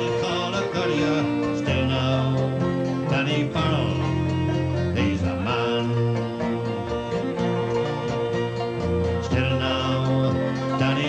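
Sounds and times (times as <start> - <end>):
acoustic guitar strumming: 0.0 - 11.0
fiddle: 0.0 - 11.0.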